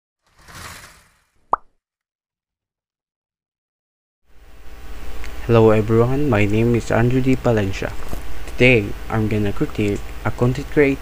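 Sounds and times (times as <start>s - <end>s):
soft whoosh: 0.3s - 1.3s.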